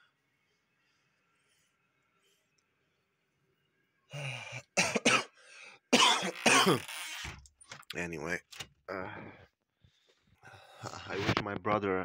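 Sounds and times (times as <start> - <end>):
man coughing: 4.7 - 6.8.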